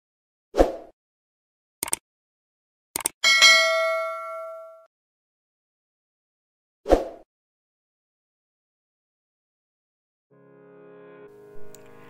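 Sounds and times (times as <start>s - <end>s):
mouse clicks: 3.0s - 3.2s
notification bell ding: 3.2s - 4.9s.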